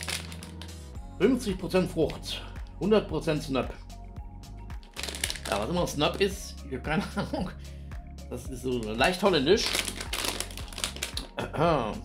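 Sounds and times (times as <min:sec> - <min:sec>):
plastic bag crinkling: 0:00.0 - 0:00.8, 0:04.9 - 0:05.7, 0:09.6 - 0:11.3.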